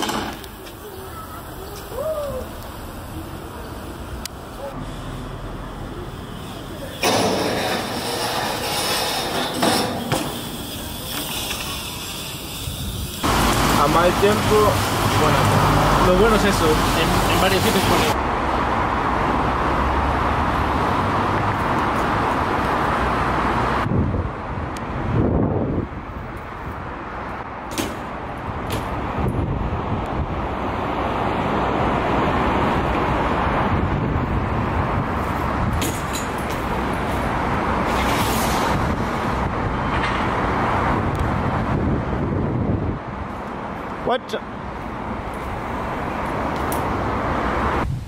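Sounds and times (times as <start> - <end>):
bike tyres rumbling on cobbles: 6.2 - 15.4.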